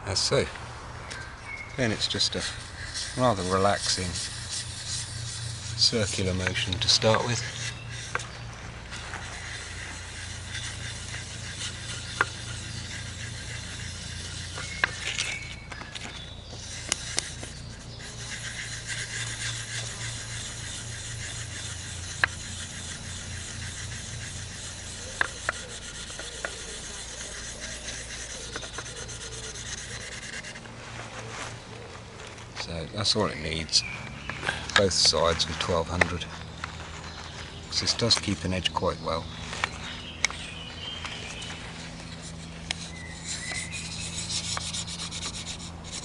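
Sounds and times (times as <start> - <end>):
knife blade scratching on sandpaper: 1.2 - 31.8, 32.4 - 46.0.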